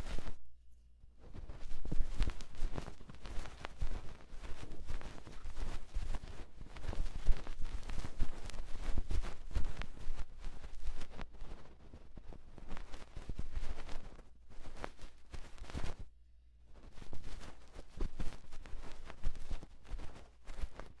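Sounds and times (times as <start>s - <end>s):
cotton swab scraping microphone: 0.0s - 0.4s, 1.2s - 16.1s, 16.8s - 21.0s.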